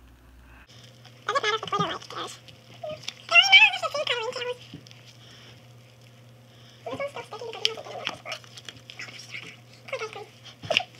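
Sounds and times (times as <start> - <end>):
faint steady hum: 0.0 - 10.9
child's wavering vocal sounds: 6.8 - 10.9.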